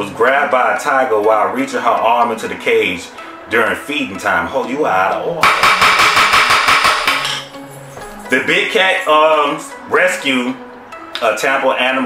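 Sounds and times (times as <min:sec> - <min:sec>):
wooden gavel knocking rapidly: 0:05.4 - 0:07.4.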